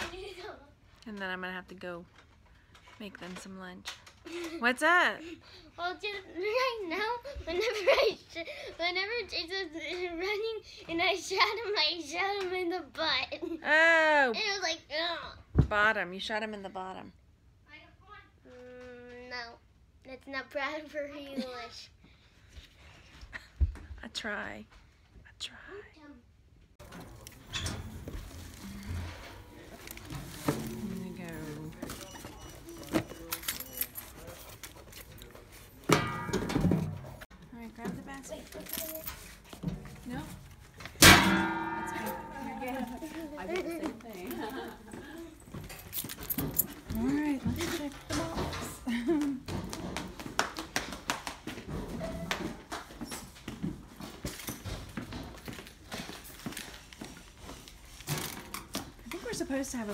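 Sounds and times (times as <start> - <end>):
running footsteps on tiled floor: 42.8 - 58.0.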